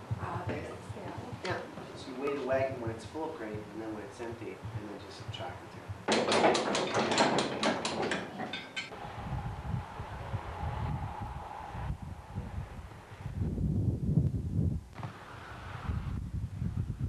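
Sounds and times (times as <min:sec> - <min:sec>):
wind buffeting microphone: 0:00.0 - 0:06.1, 0:08.9 - 0:17.0.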